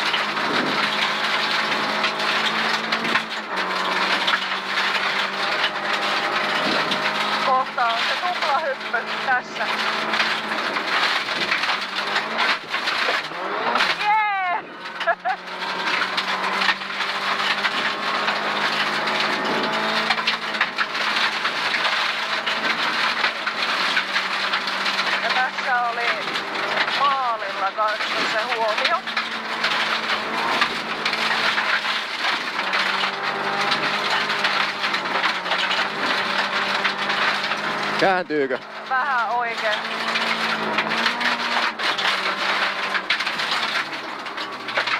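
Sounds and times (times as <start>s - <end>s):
gravel hitting car underbody: 0.0s - 44.9s
rally car engine: 0.0s - 44.9s.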